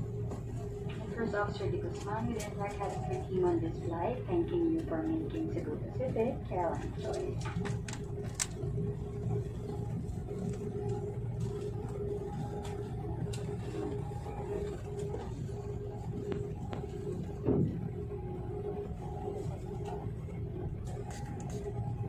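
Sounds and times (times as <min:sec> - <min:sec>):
airliner cabin rumble and hum: 0:00.0 - 0:22.0.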